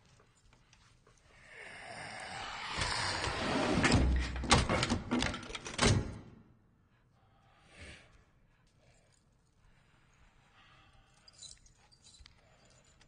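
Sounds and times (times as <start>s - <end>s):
creature rasping hissing scream: 1.8s - 3.5s.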